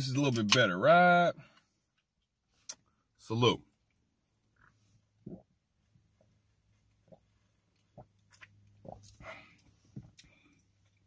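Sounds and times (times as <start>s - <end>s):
person gulping soda: 4.6s - 5.8s, 6.9s - 11.0s.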